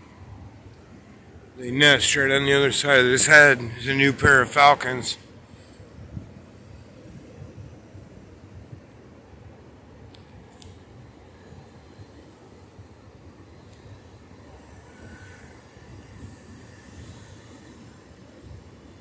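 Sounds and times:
ocean surf breaking: 0:00.0 - 0:05.2
wind rumbling on microphone: 0:05.3 - 0:19.0.

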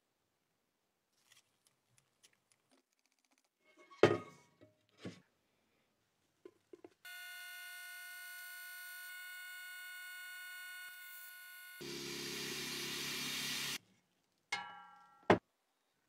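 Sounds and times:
vacuum pump whining: 0:07.1 - 0:13.8.

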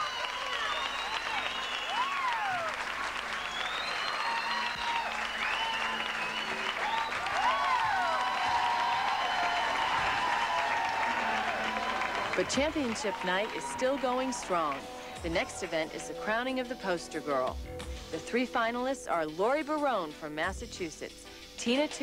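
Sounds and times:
high shrieks and whoops: 0:00.0 - 0:02.8, 0:03.4 - 0:14.4
audience applauding: 0:00.0 - 0:16.1.

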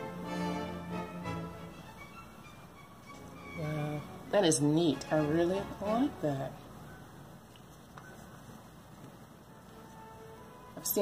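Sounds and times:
quiet steady hiss: 0:00.0 - 0:11.0.

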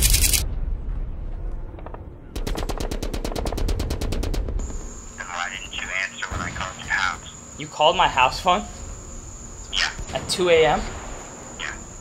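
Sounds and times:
rapid sharp cracks: 0:00.0 - 0:00.4, 0:02.4 - 0:04.9.

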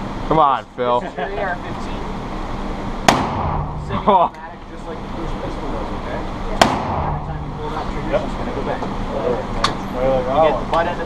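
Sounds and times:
revolver gunshot with echo: 0:03.0 - 0:03.9, 0:06.6 - 0:07.4.

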